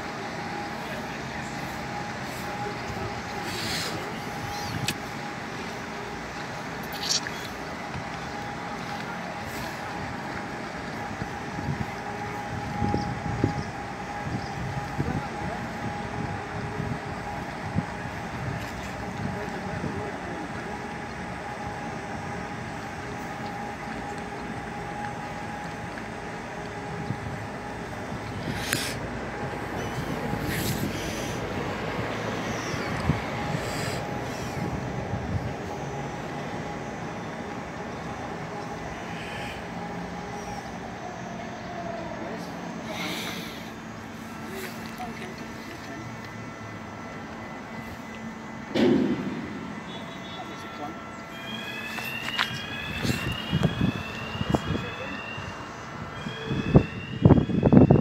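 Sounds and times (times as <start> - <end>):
bridge drive machinery running: 0.0 - 58.0.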